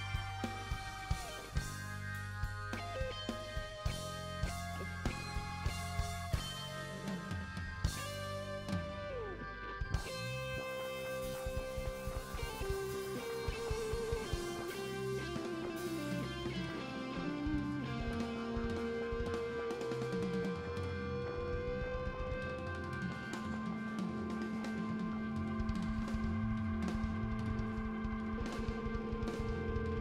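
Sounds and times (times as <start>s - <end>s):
electric guitar melody: 0.0s - 30.0s
rock band playing live: 0.0s - 30.0s
sustained organ chords: 0.0s - 30.0s.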